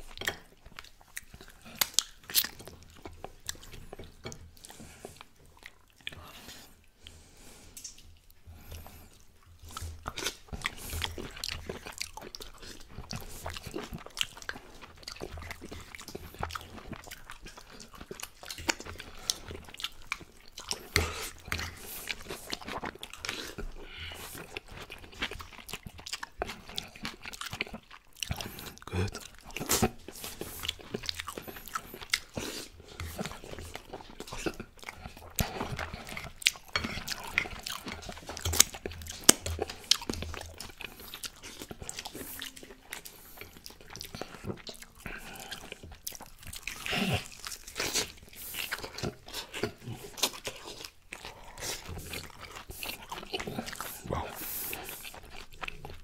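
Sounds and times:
open-mouth chewing and lip smacking: 0.0 - 56.0.

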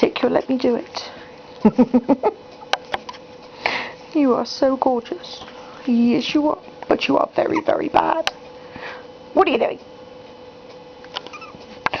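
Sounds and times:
steady low hum: 0.0 - 12.0
puppy squeaking: 11.3 - 11.6.

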